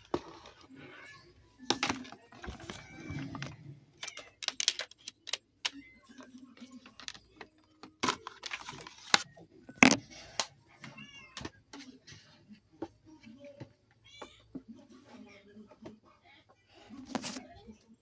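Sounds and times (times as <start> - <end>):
plastic clicks of dvd case: 4.0 - 5.8.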